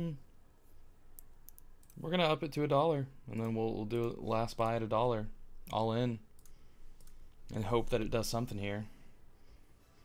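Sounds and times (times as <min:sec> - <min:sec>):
faint computer mouse clicks: 0:06.4 - 0:07.4.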